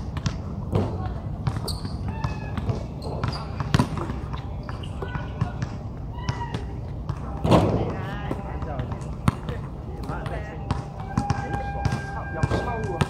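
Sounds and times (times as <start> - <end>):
basketball bouncing on hard court: 0.0 - 13.0
short high squeaks: 1.6 - 2.1.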